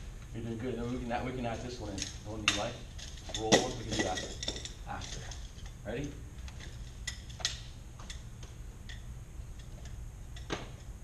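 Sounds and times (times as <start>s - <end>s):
fans humming: 0.0s - 11.0s.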